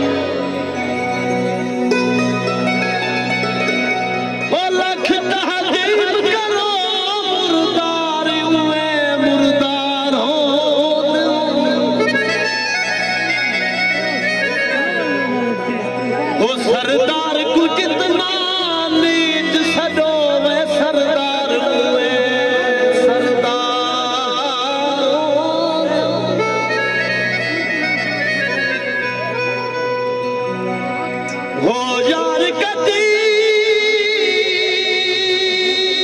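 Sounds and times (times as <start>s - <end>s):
harmonium chords and melody: 0.0s - 36.0s
man singing folk song: 16.6s - 26.7s, 31.6s - 36.0s.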